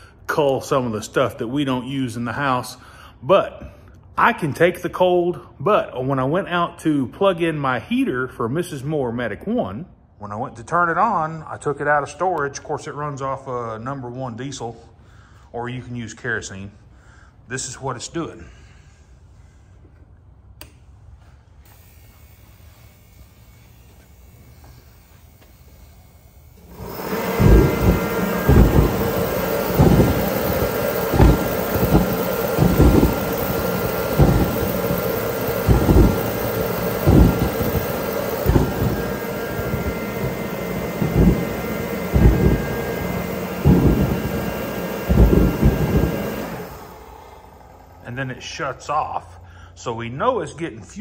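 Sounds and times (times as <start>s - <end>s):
heater fan and burner rushing: 20.6s - 49.9s
low thumps: 26.6s - 47.0s.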